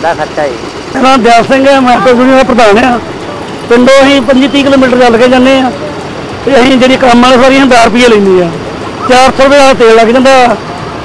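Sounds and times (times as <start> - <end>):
man talking: 0.0 - 10.8.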